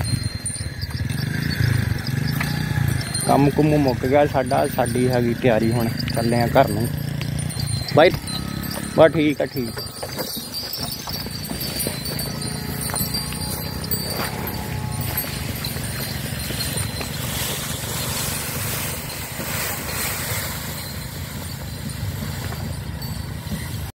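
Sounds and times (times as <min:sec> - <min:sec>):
ox hoof steps: 0:00.0 - 0:23.9
cart wheels rumbling: 0:00.0 - 0:24.0.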